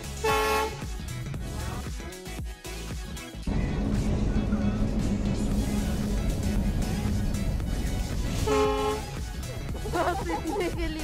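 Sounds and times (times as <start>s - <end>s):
locomotive horn toot: 0.1s - 0.9s, 8.4s - 9.3s
train passing rumble: 3.5s - 9.8s.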